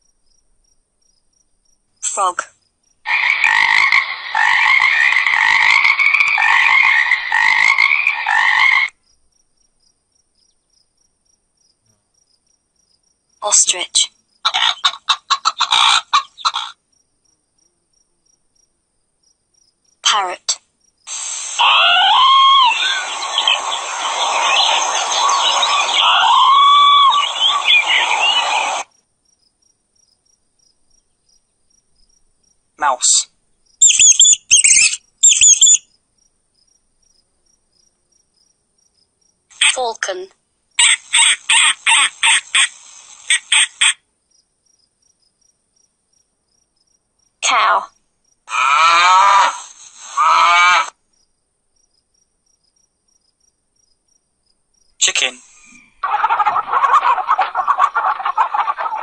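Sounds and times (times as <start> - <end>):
animal calls: 3.1 - 9.0, 14.4 - 16.8, 21.1 - 28.9, 33.8 - 35.8, 40.8 - 44.0, 48.5 - 51.0, 55.2 - 59.0.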